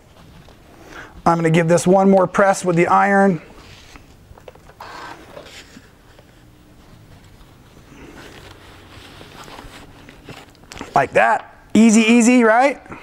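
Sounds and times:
fabric rustling: 0:03.5 - 0:11.2.

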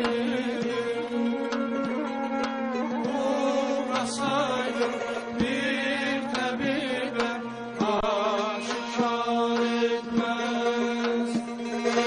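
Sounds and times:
lute and frame drums ensemble: 0:00.0 - 0:12.0.

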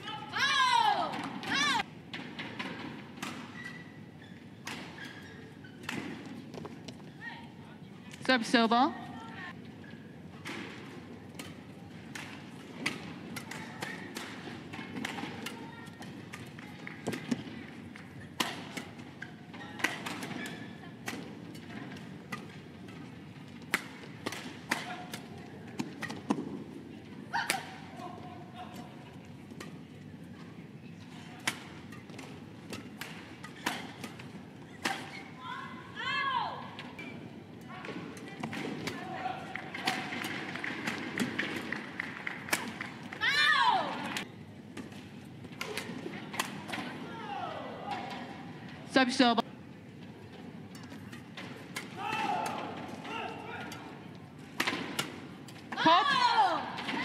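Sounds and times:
rackets hitting shuttlecock: 0:05.8 - 0:07.0, 0:10.4 - 0:28.0, 0:31.0 - 0:35.4, 0:36.8 - 0:47.0, 0:50.8 - 0:57.0.

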